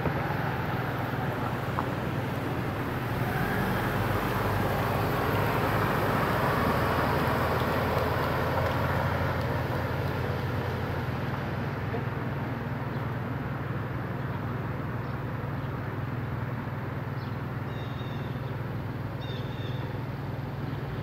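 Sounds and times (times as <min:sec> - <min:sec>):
road traffic rush: 0:00.0 - 0:21.0.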